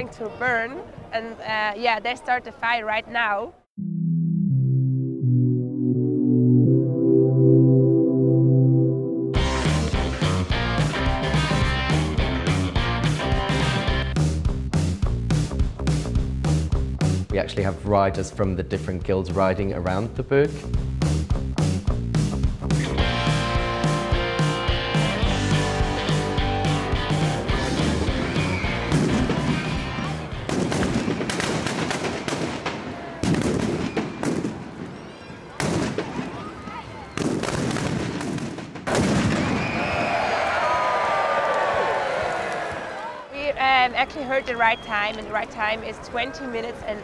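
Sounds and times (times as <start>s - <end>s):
background music with steady beat: 20.5s - 30.5s
firecrackers bursting: 28.0s - 34.9s, 35.6s - 36.4s, 37.2s - 40.4s.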